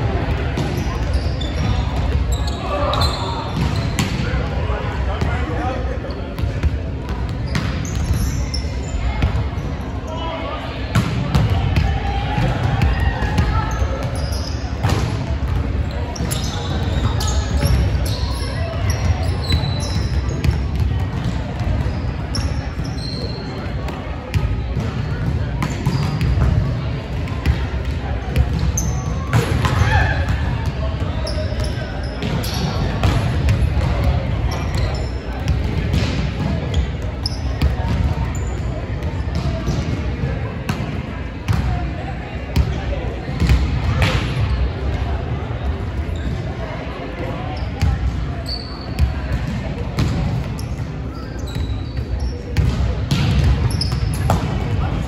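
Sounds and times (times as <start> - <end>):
players chatting: 0.0 - 55.0
volleyball hits and bounces: 32.2 - 38.2, 48.9 - 50.6, 52.6 - 55.0.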